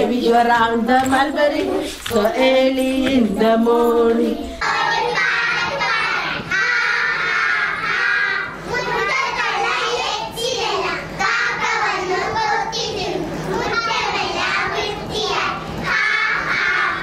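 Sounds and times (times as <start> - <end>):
young children singing and calling out: 0.0 - 17.0.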